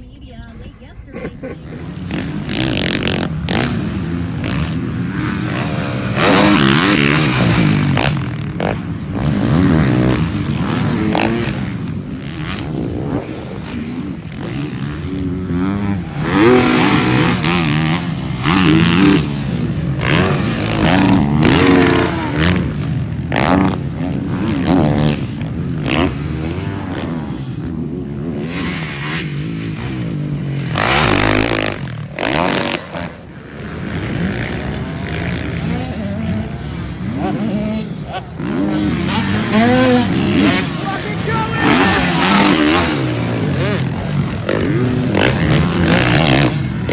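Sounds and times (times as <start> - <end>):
dirt bike engines revving: 0.0 - 46.9.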